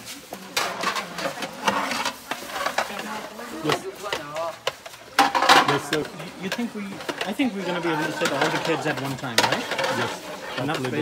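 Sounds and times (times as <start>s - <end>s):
metal trays clinking: 0.5s - 11.0s.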